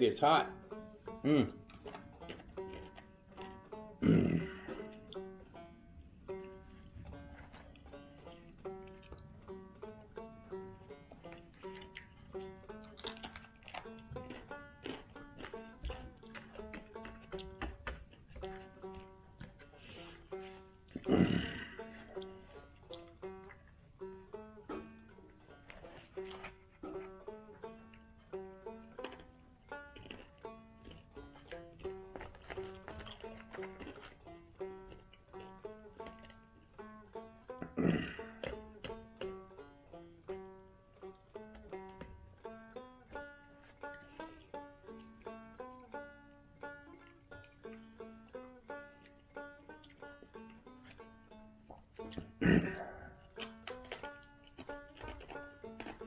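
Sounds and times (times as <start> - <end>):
banjo picking: 0.0 - 56.0.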